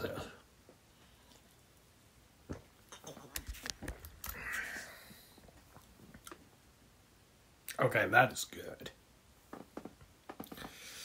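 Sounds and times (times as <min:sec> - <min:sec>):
breathy exhale: 0:04.3 - 0:05.4, 0:10.6 - 0:11.0.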